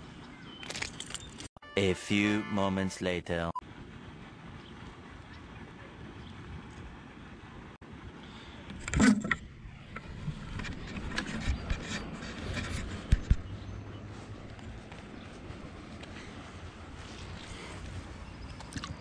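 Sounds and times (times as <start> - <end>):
handling noise rubbing and scraping: 8.8 - 16.3.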